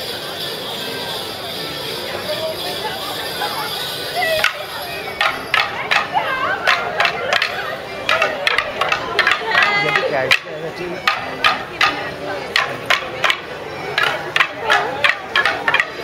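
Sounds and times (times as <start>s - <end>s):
crowd chatter: 0.0s - 16.0s
music: 0.0s - 16.0s
wooden sticks clacking: 4.2s - 16.0s.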